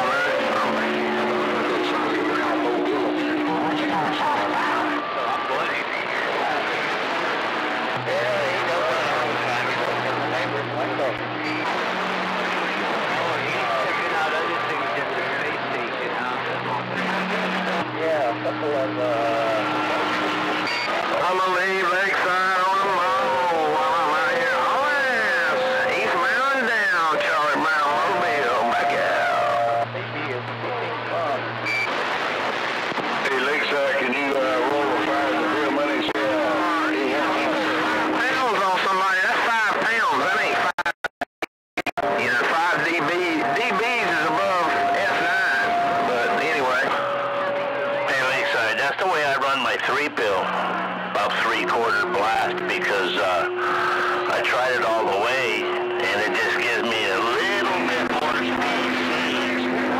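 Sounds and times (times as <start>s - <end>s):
radio hiss: 0.0s - 40.7s, 42.0s - 59.9s
warbling pitch-sliding voices: 0.0s - 40.7s, 42.0s - 59.9s
garbled radio voices: 0.0s - 40.9s, 41.8s - 59.9s
radio whistles: 19.6s - 29.9s, 31.6s - 32.6s.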